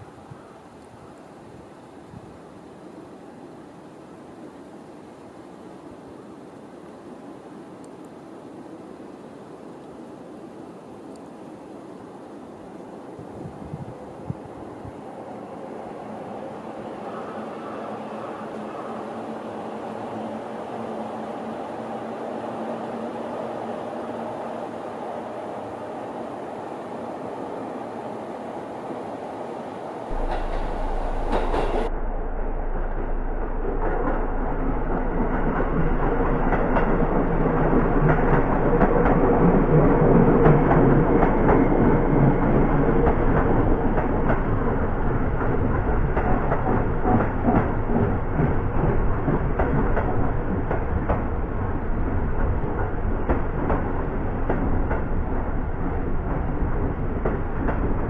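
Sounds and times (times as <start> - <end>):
electric train passing: 1.7 - 58.0
wheels clacking over rail joints: 30.1 - 31.9, 33.5 - 58.0.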